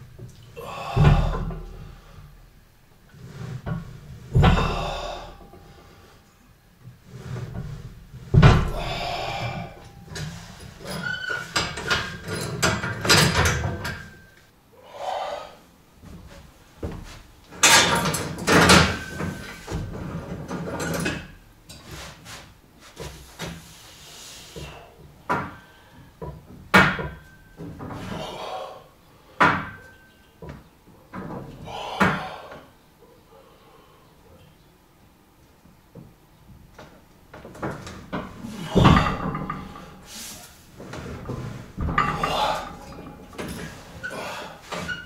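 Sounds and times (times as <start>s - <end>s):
weight machine knocks and clanks: 0.9s - 1.9s, 3.6s - 5.7s, 8.3s - 14.2s, 17.6s - 21.3s, 37.4s - 40.1s, 41.1s - 45.0s.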